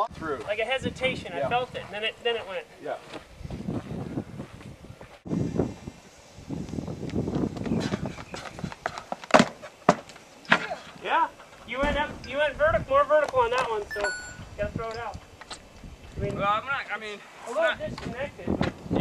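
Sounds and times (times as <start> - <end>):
running footsteps: 1.6 - 5.3, 6.7 - 10.2.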